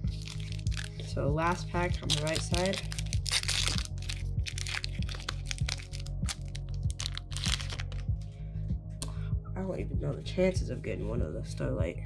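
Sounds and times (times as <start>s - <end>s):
foil wrapper crinkling: 0.0s - 8.1s
background music: 0.0s - 12.0s.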